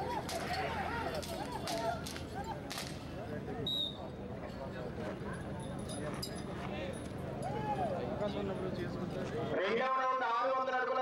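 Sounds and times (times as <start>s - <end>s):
whip cracks: 0.1s - 3.0s.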